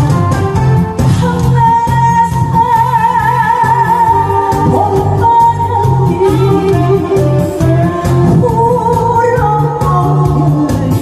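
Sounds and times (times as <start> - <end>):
musical accompaniment with bass beat: 0.0 - 11.0
woman singing into microphone: 1.0 - 11.0.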